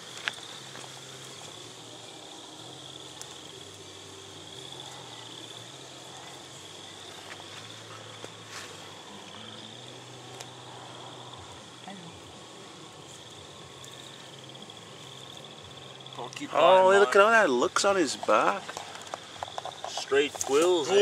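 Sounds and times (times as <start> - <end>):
crickets trilling: 0.0 - 21.0
faint clicks: 10.3 - 10.6.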